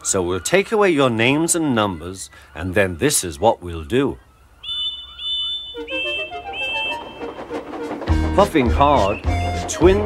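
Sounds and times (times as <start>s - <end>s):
short high whistle toots: 4.7s - 7.4s
background music: 5.8s - 10.0s.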